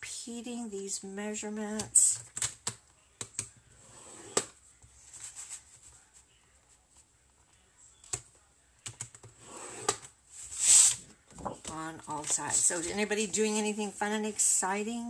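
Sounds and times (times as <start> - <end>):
faint scrape along paper: 3.8 - 6.2, 9.4 - 11.0
card sliding swish: 10.5 - 11.0.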